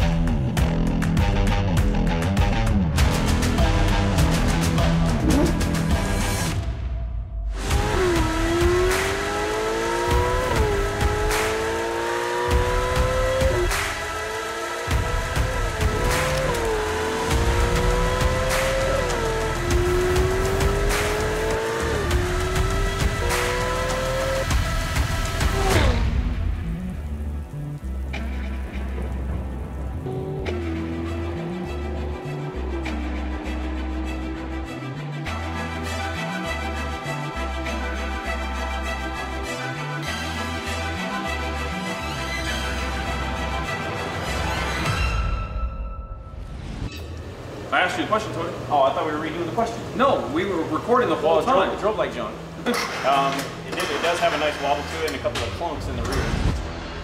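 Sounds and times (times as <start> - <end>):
background music: 0.0 - 57.0
sports car engine accelerating: 3.0 - 6.1, 7.6 - 35.8.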